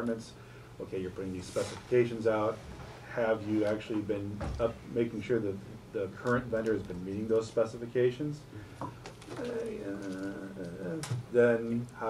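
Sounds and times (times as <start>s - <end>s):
person humming hesitation sound: 9.3s - 11.1s.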